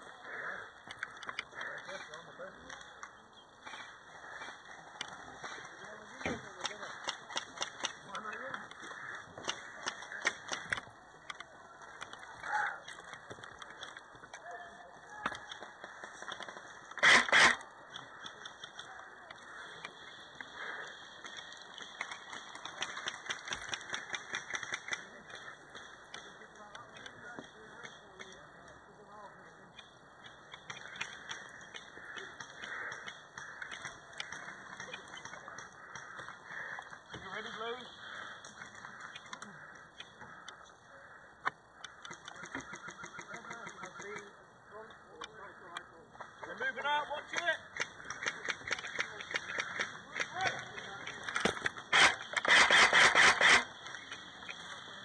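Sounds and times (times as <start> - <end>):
airsoft guns firing rapid clicks: 6.1 - 14.4, 15.2 - 26.4, 29.7 - 37.0, 41.8 - 44.4, 47.1 - 54.9.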